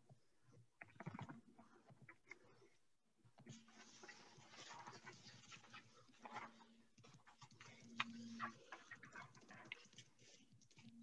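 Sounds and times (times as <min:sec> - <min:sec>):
faint clicks and rustling: 0:00.0 - 0:11.0.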